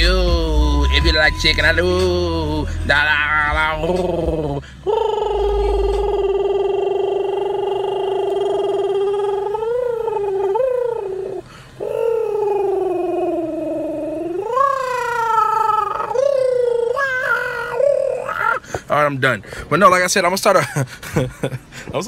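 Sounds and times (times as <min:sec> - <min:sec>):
man singing wordless high notes: 0:00.0 - 0:09.4.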